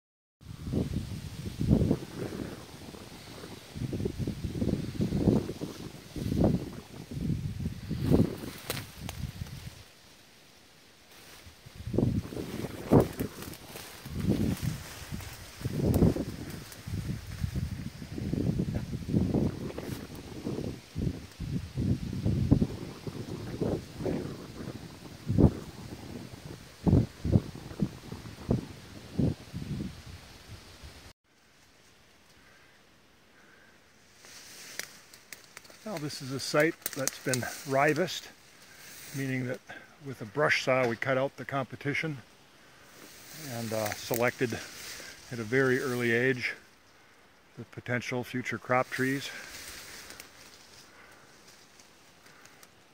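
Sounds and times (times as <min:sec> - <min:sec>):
wind buffeting microphone: 0:00.4 - 0:09.8, 0:11.5 - 0:31.1
leaves rustling: 0:00.4 - 0:52.9.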